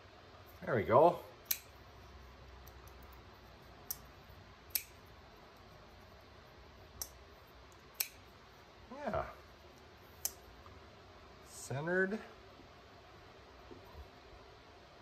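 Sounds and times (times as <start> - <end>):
folding knife clicking: 1.4 - 1.7, 4.7 - 5.0, 7.0 - 8.2.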